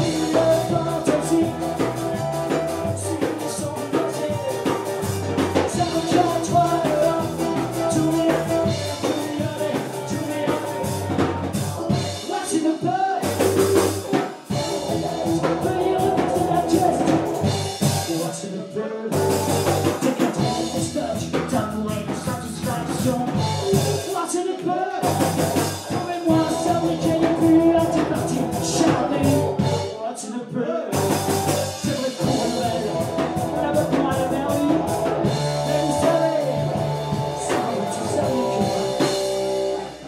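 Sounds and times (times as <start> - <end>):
live rock band playing: 0.0 - 30.0, 30.9 - 40.0.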